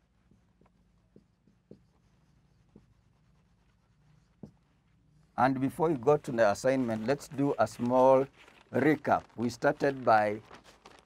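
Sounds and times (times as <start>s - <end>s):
marker pen scratching on board: 0.0s - 4.9s.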